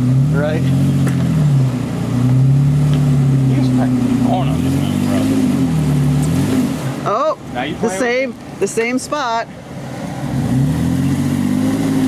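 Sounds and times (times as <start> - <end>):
engine revving under load: 0.0 - 8.1, 9.7 - 12.0.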